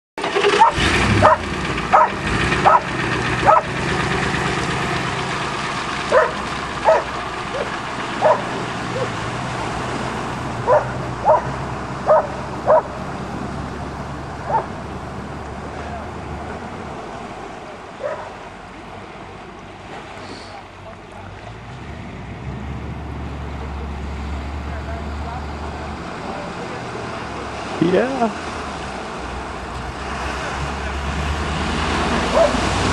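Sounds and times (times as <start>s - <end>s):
dog barking: 0.6s - 3.7s, 6.1s - 9.2s, 10.7s - 13.0s, 14.4s - 14.8s, 18.0s - 18.4s, 32.3s - 32.6s
low rumble: 0.8s - 19.8s.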